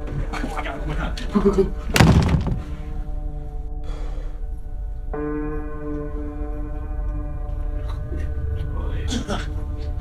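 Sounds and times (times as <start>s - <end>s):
loud ringing thunk: 2.0s - 2.8s.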